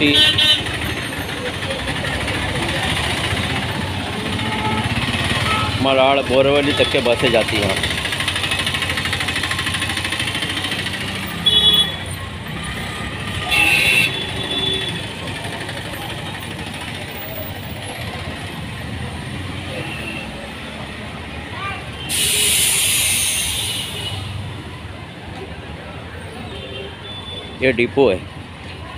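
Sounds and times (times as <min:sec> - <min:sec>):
buses running: 0:00.0 - 0:28.9
air-brake hiss: 0:22.0 - 0:24.2.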